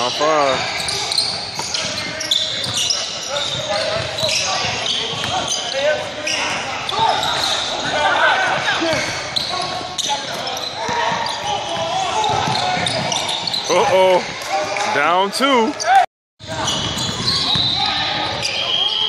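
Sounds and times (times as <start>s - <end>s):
sneaker squeaks on hardwood: 0.0s - 8.0s, 8.6s - 13.9s, 15.7s - 19.0s
players shouting: 0.0s - 19.0s
basketball bouncing: 0.8s - 5.6s, 8.5s - 13.6s.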